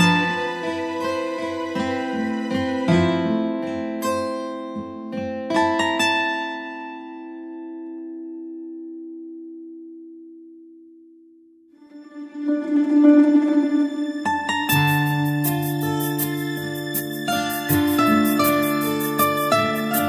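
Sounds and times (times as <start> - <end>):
plucked string instrument music: 0.0 - 20.0.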